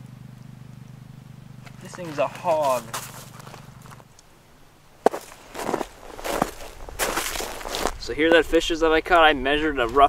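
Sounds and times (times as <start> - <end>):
footsteps crunching in snow: 1.6 - 4.1, 5.0 - 8.1
short crunches or rustles: 1.6 - 4.2, 5.0 - 8.0.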